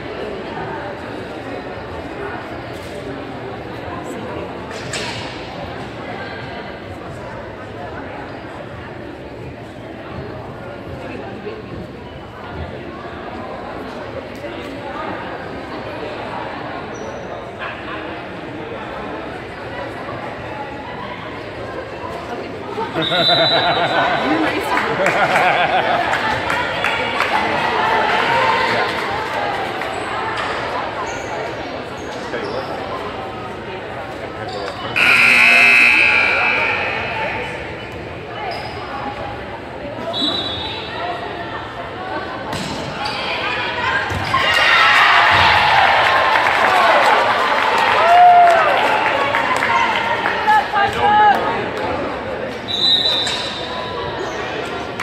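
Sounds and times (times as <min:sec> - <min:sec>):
indistinct chatter echoing: 0:00.0 - 0:55.0
players' voices: 0:00.0 - 0:55.0
shoes squeaking on gym floor: 0:34.4 - 0:35.0, 0:37.6 - 0:39.0
referee's whistle blast: 0:35.0 - 0:37.8.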